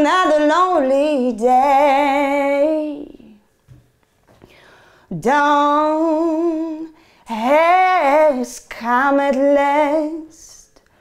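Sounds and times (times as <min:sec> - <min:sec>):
faint breath sounds: 0:04.4 - 0:05.1.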